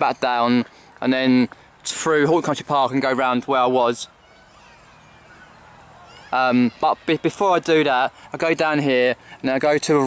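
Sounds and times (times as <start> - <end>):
distant birds chirping: 0.0 - 10.0.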